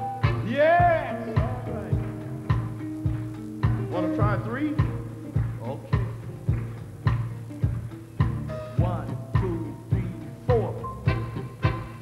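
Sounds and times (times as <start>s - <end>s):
blues band playing: 0.0s - 12.0s
drum kit beat: 0.0s - 12.0s.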